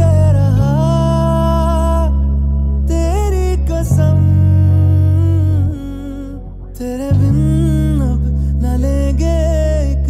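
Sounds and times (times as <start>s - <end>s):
electric bass guitar: 0.0s - 10.0s.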